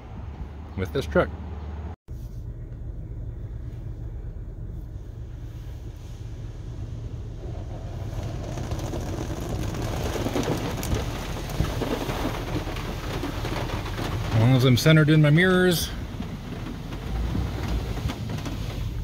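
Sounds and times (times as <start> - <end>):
low steady rumble: 0.0 - 19.0
water jets spraying on car: 6.1 - 19.0.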